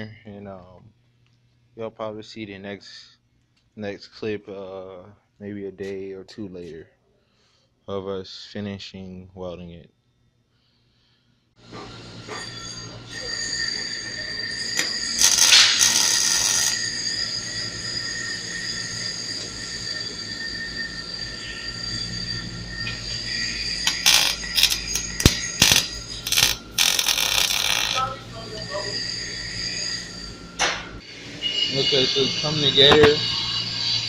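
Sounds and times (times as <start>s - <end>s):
steel cutting whine: 11.6s - 34.0s.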